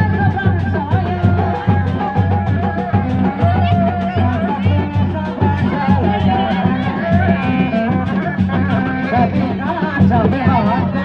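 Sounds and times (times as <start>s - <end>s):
drums beating steady rhythm: 0.0s - 11.0s.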